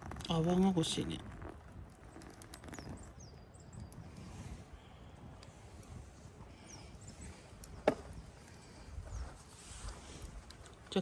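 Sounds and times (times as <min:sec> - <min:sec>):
wind on microphone: 0:00.0 - 0:10.8.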